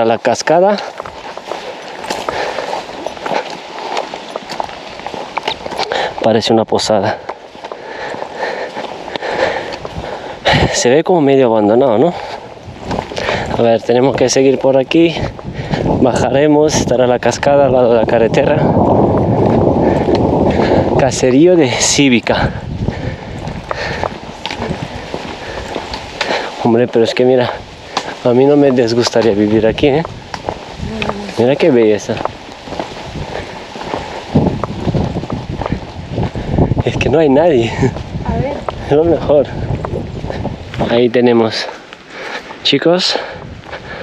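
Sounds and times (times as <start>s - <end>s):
footsteps on pavement: 0.0s - 44.0s
low rumble: 18.1s - 21.9s.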